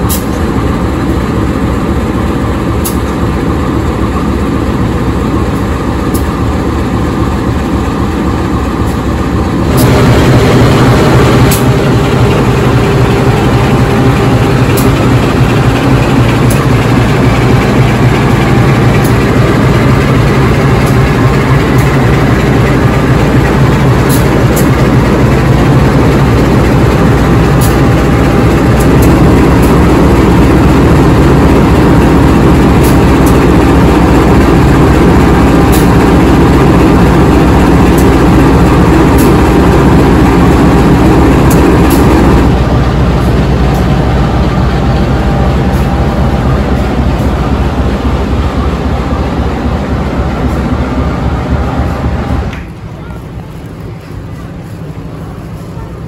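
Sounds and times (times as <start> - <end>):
diesel locomotive engine running: 0.0 - 56.0.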